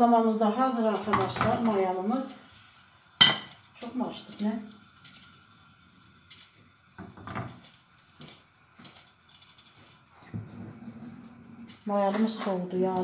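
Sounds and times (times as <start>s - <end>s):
cookware clicks and knocks: 1.0s - 1.7s.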